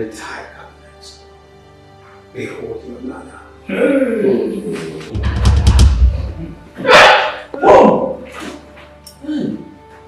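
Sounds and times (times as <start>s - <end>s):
soft background music: 0.0s - 10.0s
dog barking: 6.8s - 7.6s.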